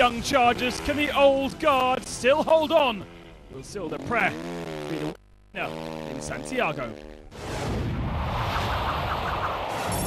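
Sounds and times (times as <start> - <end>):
rushing rumbling sound effect: 7.4 - 10.0.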